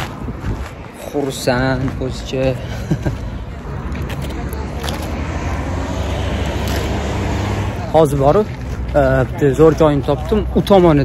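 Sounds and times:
wind buffeting microphone: 0:00.0 - 0:08.9
road traffic rumble: 0:00.0 - 0:11.0.

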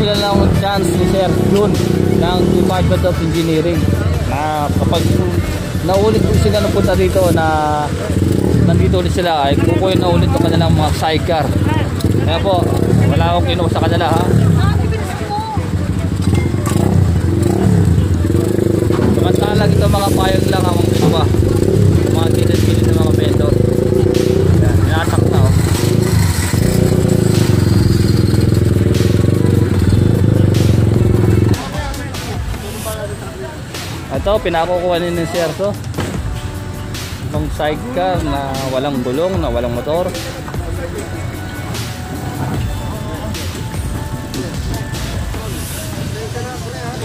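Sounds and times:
truck engine running: 0:00.0 - 0:34.4
people talking and calling: 0:00.0 - 0:47.0.

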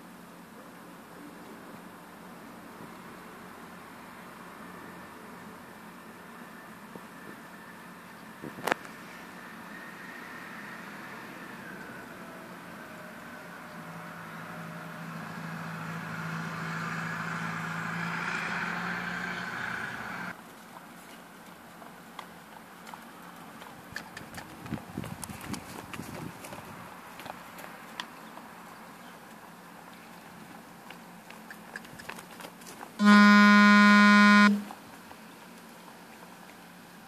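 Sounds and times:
engine hum: 0:01.2 - 0:20.4, 0:21.7 - 0:37.0
loud buzzing tone: 0:33.0 - 0:34.7.

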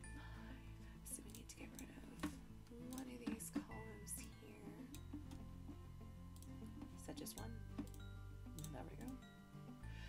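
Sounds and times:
low steady hum: 0:00.0 - 0:10.0
woman whispering: 0:01.0 - 0:04.8.

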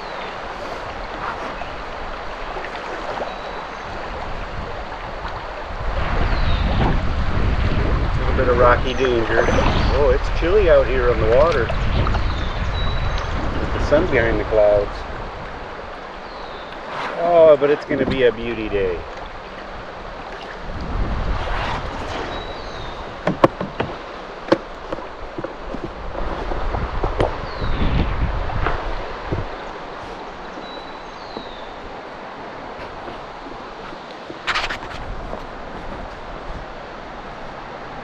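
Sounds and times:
water lapping around canoe: 0:00.0 - 0:38.0
wind buffeting microphone: 0:00.0 - 0:38.0
sharp knocks: 0:23.2 - 0:25.6.

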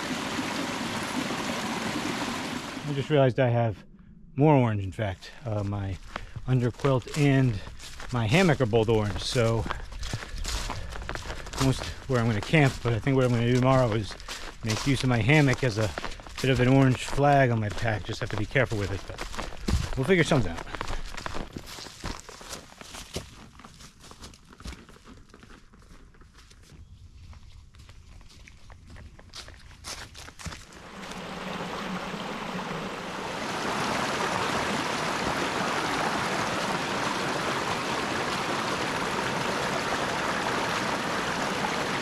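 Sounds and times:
brook spilling over rocks: 0:00.0 - 0:03.0, 0:30.6 - 0:42.0
footsteps crunching leaves: 0:06.0 - 0:31.8.

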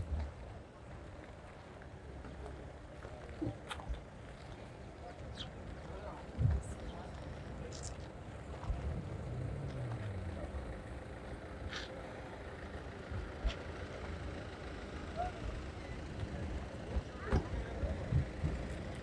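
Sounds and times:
low vehicle rumble: 0:00.0 - 0:19.0
murmur of distant voices: 0:00.0 - 0:19.0.

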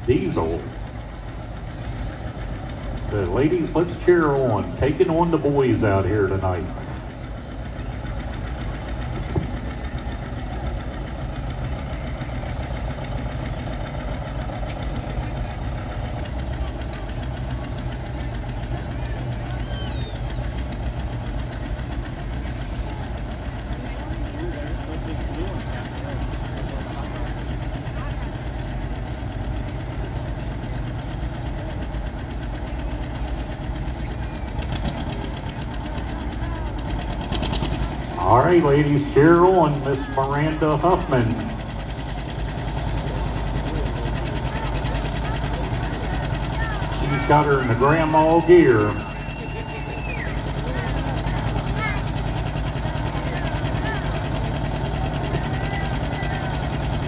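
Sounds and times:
tractor diesel engine idling: 0:00.0 - 0:57.0.

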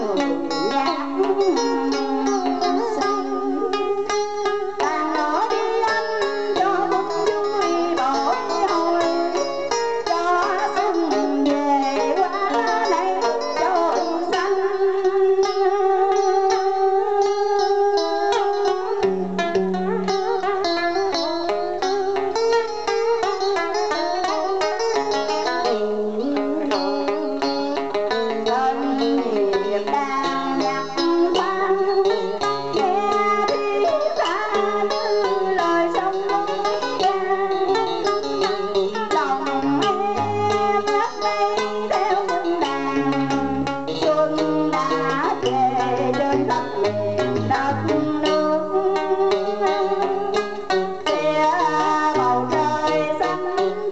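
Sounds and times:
plucked string instruments playing: 0:00.0 - 0:53.9.

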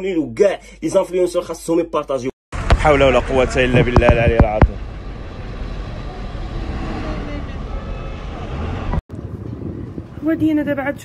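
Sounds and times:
street noise: 0:02.5 - 0:11.0.

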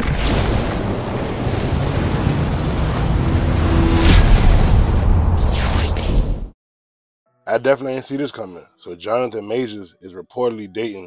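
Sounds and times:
deep rumble: 0:00.9 - 0:05.8
rushing noise: 0:01.4 - 0:05.8.

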